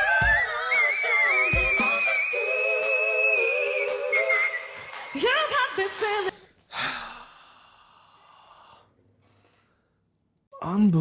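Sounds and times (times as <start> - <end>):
man sighing heavily: 6.7 - 7.7.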